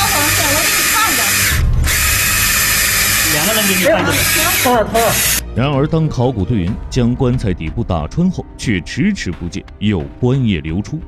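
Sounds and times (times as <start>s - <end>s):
cordless drill boring into wood: 0.0s - 5.4s.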